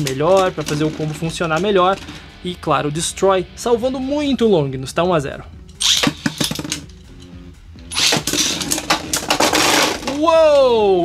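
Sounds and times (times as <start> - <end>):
spinning tops clashing: 0.0 - 2.3, 5.7 - 7.3, 7.9 - 10.2
spinning tops clattering: 0.0 - 2.3, 5.7 - 7.1, 7.9 - 10.2
tops spinning: 0.0 - 2.4, 7.9 - 10.4.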